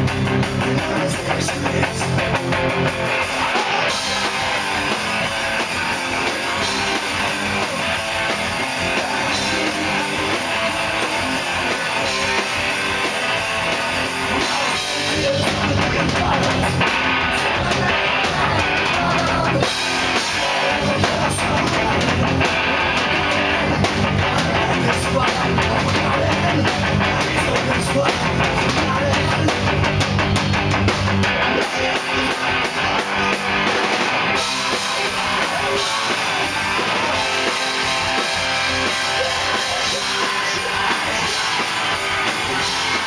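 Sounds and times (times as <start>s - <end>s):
bass guitar: 0.0s - 43.0s
distorted electric guitars: 0.0s - 43.0s
drums keeping a steady beat: 0.0s - 43.0s
punk rock band playing live: 0.0s - 43.0s
person shouting lead vocal: 3.1s - 29.6s, 34.4s - 43.0s.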